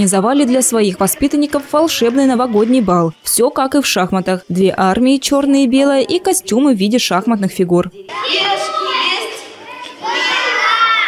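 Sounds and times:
children shouting together: 0:08.1 - 0:11.0.

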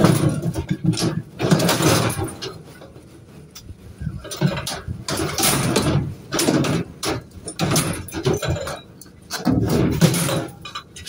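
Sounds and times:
scrap metal rattling and scraping: 0:00.0 - 0:11.0.

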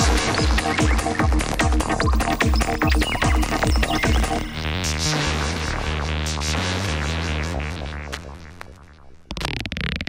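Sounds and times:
layered synth patterns: 0:00.0 - 0:06.6
synth bass tones: 0:00.0 - 0:10.0.

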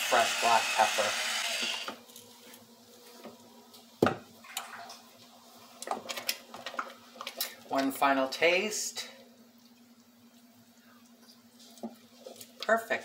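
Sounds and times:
wooden spoon stirring soup: 0:09.5 - 0:12.8.

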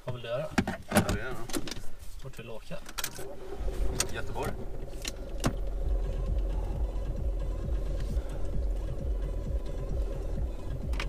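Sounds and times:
car engine idling: 0:03.0 - 0:11.0.

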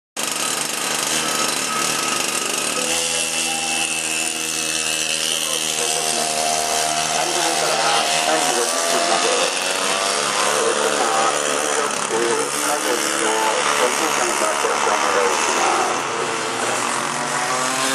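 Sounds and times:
kart engine revving: 0:00.2 - 0:17.9.

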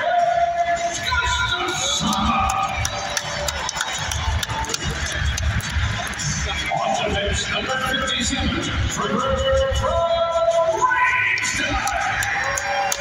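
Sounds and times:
crowd cheering: 0:00.1 - 0:07.3, 0:10.8 - 0:13.0
announcer's voice: 0:06.5 - 0:12.2.

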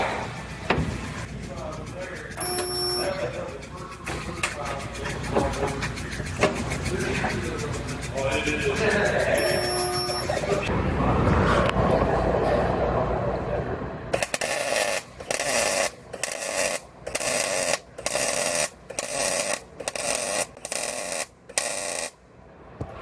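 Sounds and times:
welder crackling: 0:14.2 - 0:22.2.

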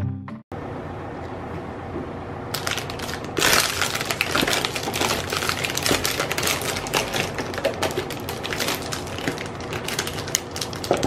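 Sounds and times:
plastic wrap crinkling: 0:02.5 - 0:11.0.

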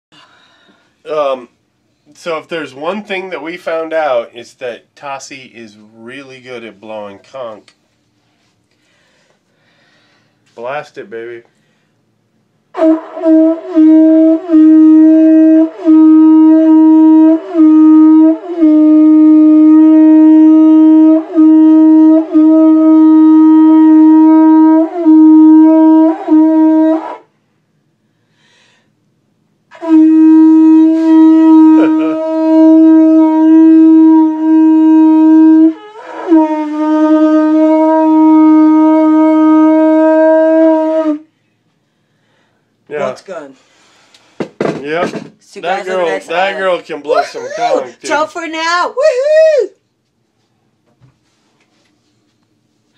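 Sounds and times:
conch shell horn blasts: 0:12.7 - 0:27.3, 0:29.7 - 0:41.3.

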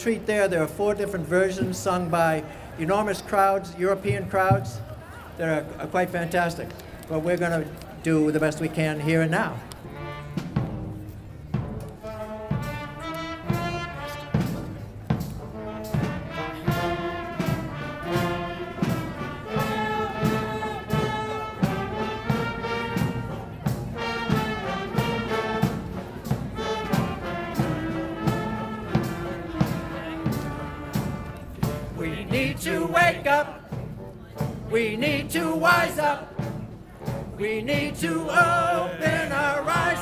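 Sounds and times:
brass marching band playing: 0:00.0 - 0:07.5, 0:08.3 - 0:40.0
steady drum beat: 0:12.5 - 0:40.0
voices singing: 0:19.2 - 0:22.8, 0:31.9 - 0:33.7, 0:34.7 - 0:36.6, 0:37.4 - 0:40.0.

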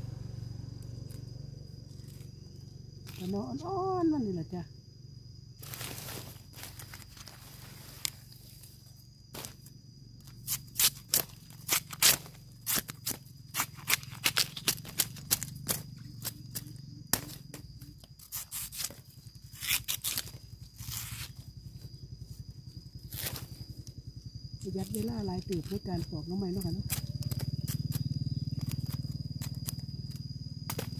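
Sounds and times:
knife cutting and snapping husk: 0:10.5 - 0:17.4.

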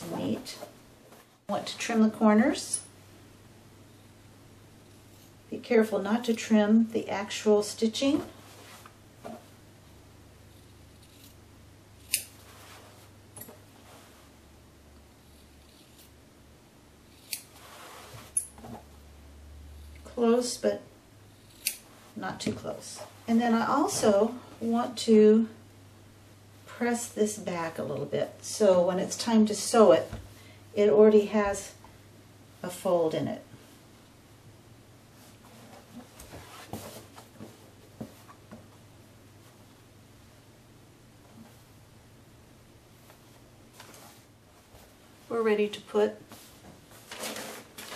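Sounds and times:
fabric placemat rustling: 0:08.0 - 0:09.0, 0:12.4 - 0:13.1, 0:13.8 - 0:14.4, 0:17.5 - 0:18.4, 0:35.1 - 0:38.4, 0:42.9 - 0:45.3, 0:46.2 - 0:47.9
scissors snipping fabric: 0:12.0 - 0:12.4, 0:17.1 - 0:17.6, 0:21.4 - 0:21.8.

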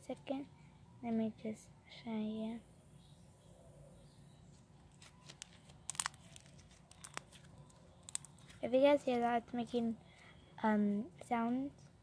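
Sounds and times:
slime clicking and popping: 0:05.0 - 0:08.5.

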